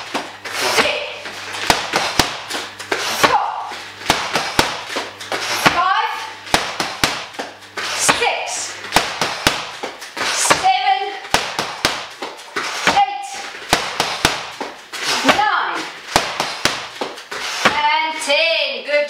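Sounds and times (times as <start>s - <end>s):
strikes slapping pads: 1.6s - 17.9s.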